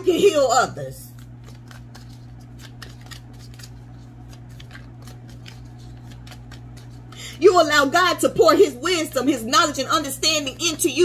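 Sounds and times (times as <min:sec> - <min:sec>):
low electrical hum: 0:00.0 - 0:11.0
cards being shuffled: 0:01.0 - 0:07.3.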